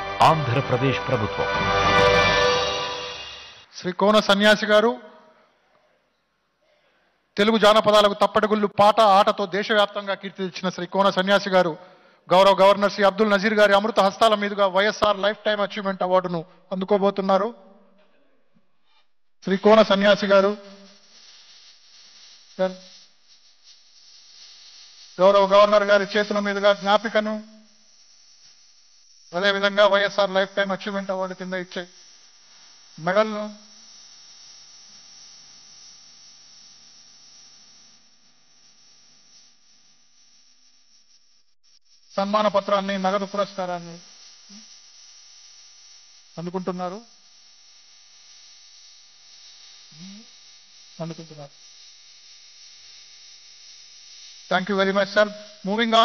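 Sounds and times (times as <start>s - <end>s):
hall background noise: 0.0s - 3.6s
hiss: 1.9s - 3.8s, 19.5s - 25.2s, 43.4s - 44.8s, 49.9s - 50.3s.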